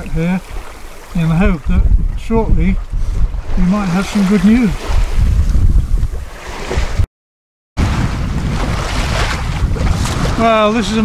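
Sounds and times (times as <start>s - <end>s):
choppy sea waves: 0.0s - 7.1s, 7.8s - 11.0s
wind buffeting microphone: 0.0s - 7.1s, 7.8s - 11.0s.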